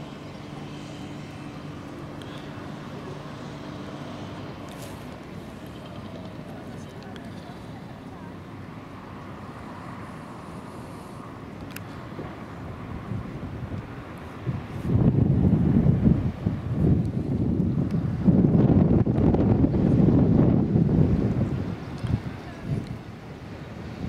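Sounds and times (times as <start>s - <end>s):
wind buffeting microphone: 12.0s - 24.0s.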